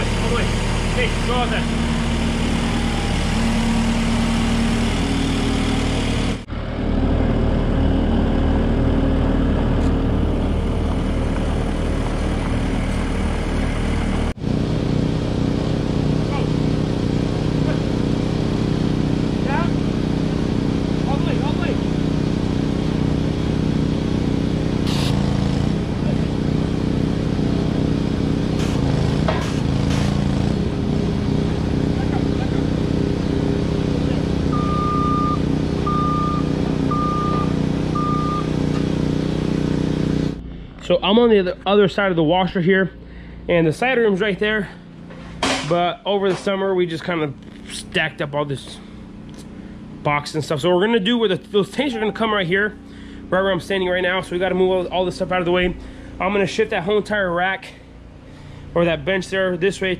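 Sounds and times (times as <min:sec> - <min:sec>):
skid steer engine idling: 0:00.0 - 0:39.1, 0:40.2 - 0:59.9.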